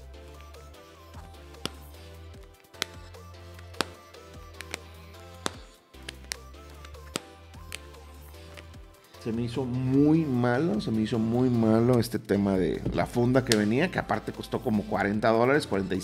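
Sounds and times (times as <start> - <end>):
background music: 0.0 - 16.0
plastic phone case clicking: 4.6 - 7.8.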